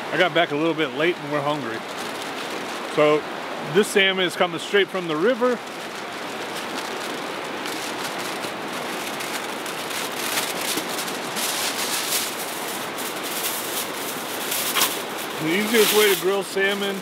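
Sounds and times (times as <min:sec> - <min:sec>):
fast river rushing: 0:00.0 - 0:17.0
aluminium foil crinkling: 0:00.6 - 0:03.0, 0:04.8 - 0:17.0.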